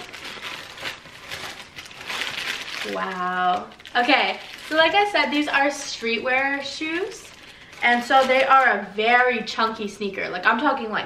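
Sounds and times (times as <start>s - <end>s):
tissue paper rustling: 0.0s - 8.9s.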